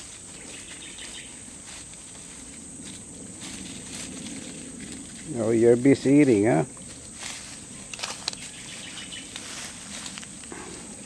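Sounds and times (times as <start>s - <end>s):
cow tearing grass: 0.0s - 11.0s
high insect drone: 0.0s - 11.0s.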